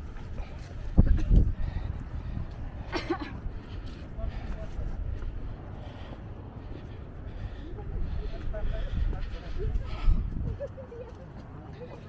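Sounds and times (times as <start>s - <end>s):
wind rumbling on microphone: 0.0s - 12.0s
faint crowd voices: 3.4s - 12.0s.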